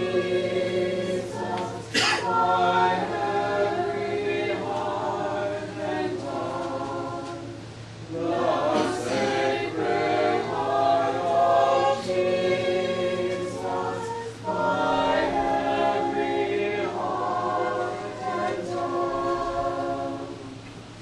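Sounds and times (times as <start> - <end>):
choir singing a hymn: 0.0 - 20.7.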